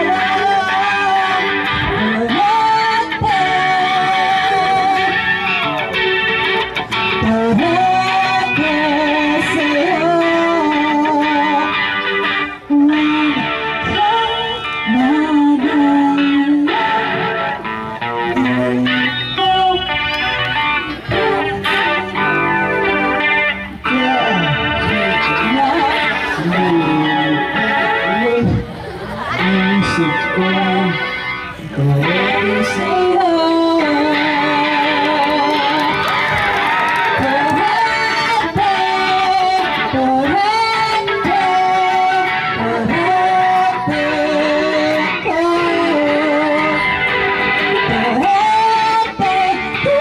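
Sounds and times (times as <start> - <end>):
woman singing: 0.0 - 5.3, 7.2 - 11.8, 12.5 - 17.3, 21.1 - 22.2, 31.8 - 36.0, 37.1 - 46.9, 47.8 - 50.0
distorted electric guitar: 0.0 - 50.0.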